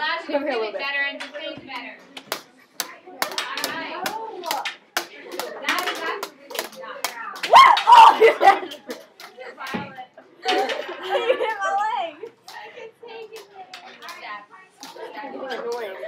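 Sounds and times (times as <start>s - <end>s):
girls' voices: 0.0s - 16.0s
canes clacking together: 1.2s - 11.1s
loud cry: 7.4s - 8.4s.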